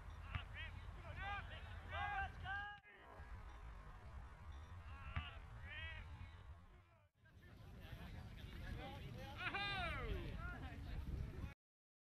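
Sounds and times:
wind rumbling on microphone: 3.2s - 11.6s.

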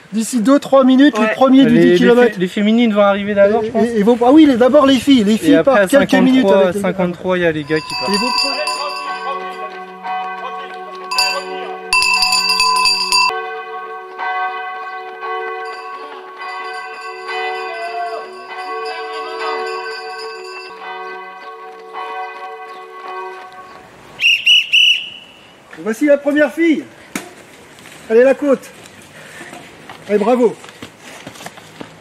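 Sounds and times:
church bells ringing: 7.5s - 24.0s.

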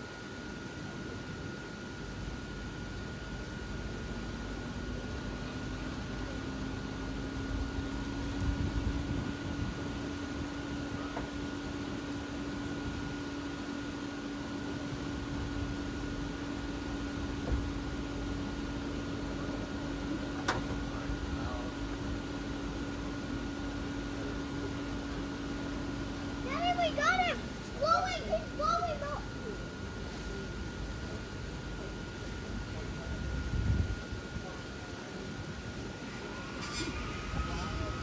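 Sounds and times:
blower fan spinning up: 0.0s - 38.0s
steady whir of blowers: 0.0s - 38.0s.

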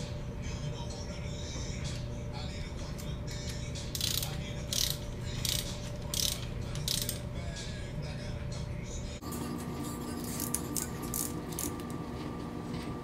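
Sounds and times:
torque wrench ratcheting: 3.9s - 7.2s.

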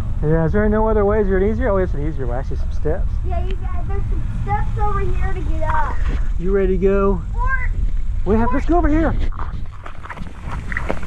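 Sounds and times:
wind rumble on microphone: 7.6s - 11.0s
footsteps on rubber mulch: 8.6s - 11.0s
microphone handling noise: 8.9s - 11.0s.

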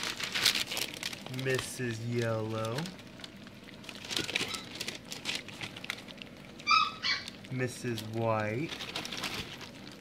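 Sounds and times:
puppies eating: 0.2s - 10.0s
puppy whining: 4.2s - 4.8s, 6.6s - 7.4s.

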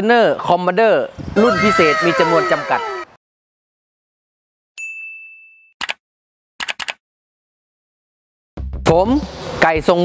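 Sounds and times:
bell-like ding: 4.8s - 5.8s.

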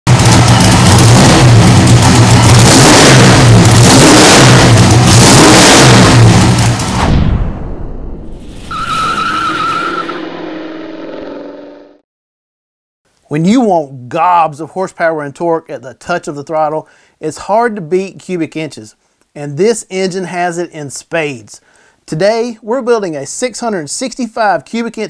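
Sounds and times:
loud engine revving: 0.1s - 7.1s, 9.0s - 12.0s
high whine: 5.9s - 12.0s.

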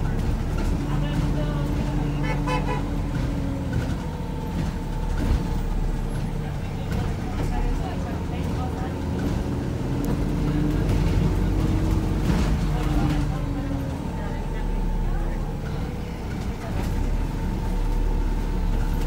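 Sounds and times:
bus drivetrain rumble: 0.0s - 19.0s.

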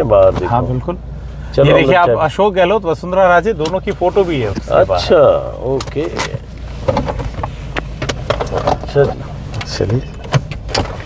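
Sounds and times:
engine and road rumble: 0.0s - 11.0s.

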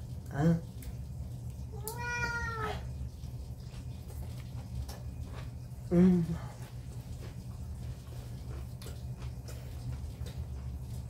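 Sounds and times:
cat meowing: 1.7s - 2.9s.

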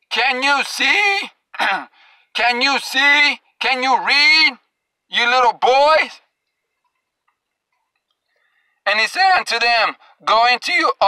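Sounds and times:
man's voice: 0.1s - 6.2s, 8.9s - 11.0s
faint ticks: 6.3s - 8.9s.

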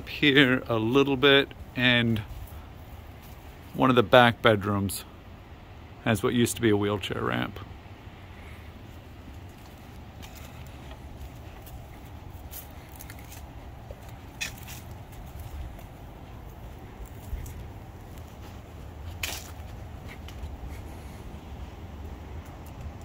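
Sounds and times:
footsteps on grass and dry leaves: 0.0s - 3.8s, 8.8s - 22.4s
sharp crackles: 9.5s - 21.1s.

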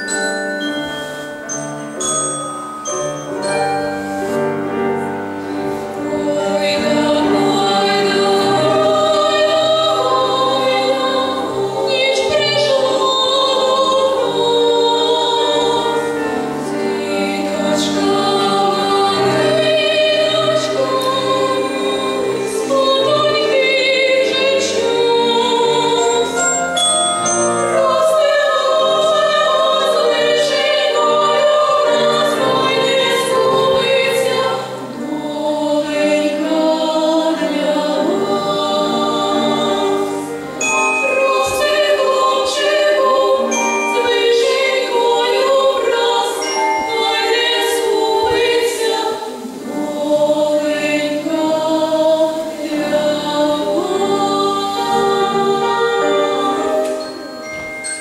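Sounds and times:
girls singing a lullaby: 5.0s - 58.0s.

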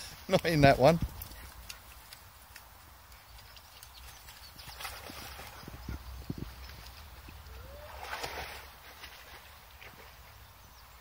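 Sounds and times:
dog splashing through stream: 0.5s - 11.0s.

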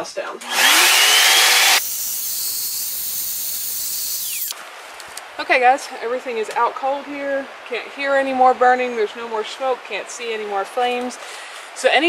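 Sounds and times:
handheld vacuum cleaner whine: 0.4s - 4.6s.

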